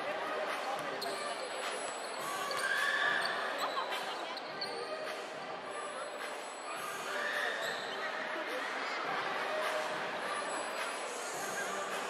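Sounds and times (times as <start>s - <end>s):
crowd voices and shouts: 0.0s - 12.0s.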